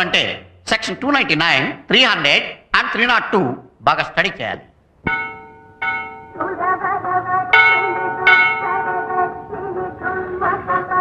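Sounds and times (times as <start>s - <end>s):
temple bell ringing: 5.1s - 6.5s, 7.5s - 9.6s
wavering melody: 5.1s - 10.2s.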